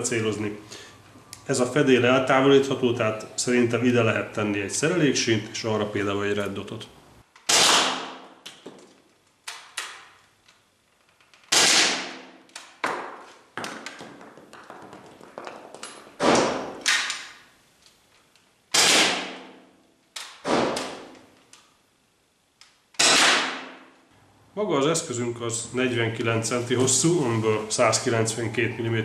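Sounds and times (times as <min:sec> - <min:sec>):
paintball marker shots: 0:07.4 - 0:08.4, 0:23.0 - 0:23.8.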